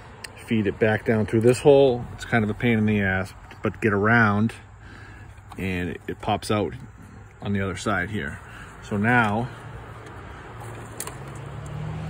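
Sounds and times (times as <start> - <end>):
vehicle engine hum: 0.0 - 12.0.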